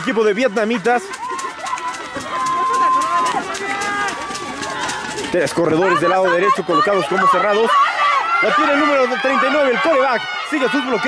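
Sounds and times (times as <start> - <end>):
people shouting: 0.0 - 11.0.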